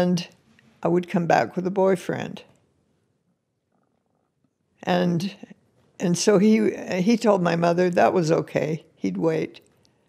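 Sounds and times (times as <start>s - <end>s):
woman speaking: 0.0s - 2.5s, 4.8s - 9.6s.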